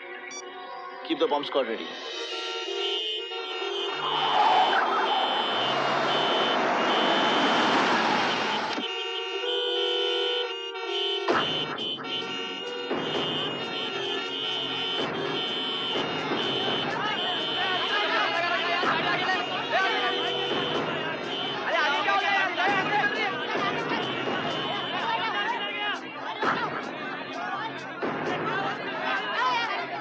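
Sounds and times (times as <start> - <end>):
engine and street noise: 1.8 - 30.0
car and bus horns honking: 1.9 - 30.0
people shouting: 3.8 - 8.8, 16.3 - 30.0.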